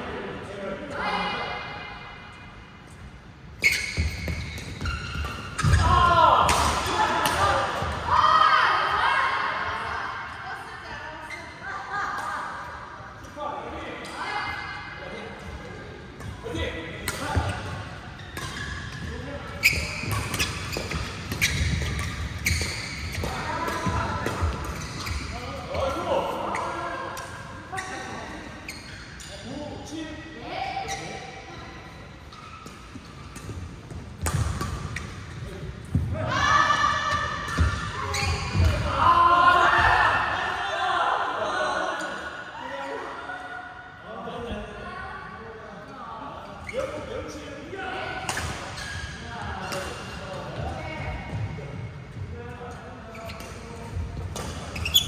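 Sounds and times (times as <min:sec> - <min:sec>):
rackets striking shuttlecock: 0:33.4 - 0:35.1.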